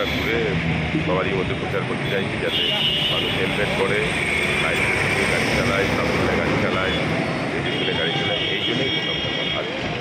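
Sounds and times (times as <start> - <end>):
street traffic: 0.0 - 10.0.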